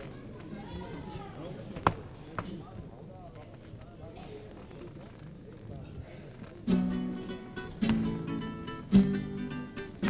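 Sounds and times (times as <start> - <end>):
voices on stage: 0.0 - 6.7.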